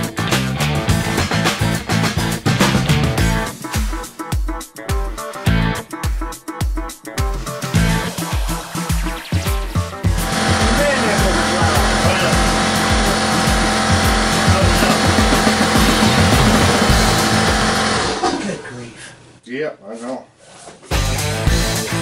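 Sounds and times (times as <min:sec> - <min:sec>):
background music with beat: 0:00.0 - 0:18.2, 0:20.8 - 0:22.0
electric motor whirring: 0:10.1 - 0:18.3.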